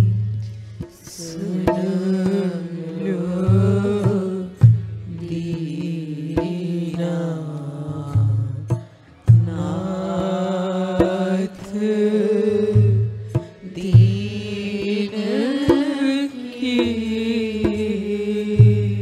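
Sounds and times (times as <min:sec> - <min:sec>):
low steady accompaniment: 0:00.0 - 0:19.0
person singing devotional song: 0:00.0 - 0:19.0.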